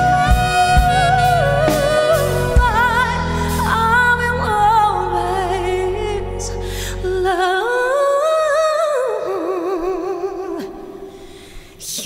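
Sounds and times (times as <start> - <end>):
woman singing without words: 0.0 - 12.0.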